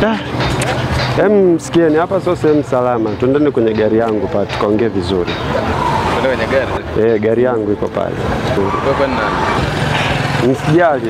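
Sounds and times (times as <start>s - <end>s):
men talking: 0.0s - 11.0s
roadside traffic: 0.0s - 11.0s
vehicle engine running: 0.0s - 11.0s.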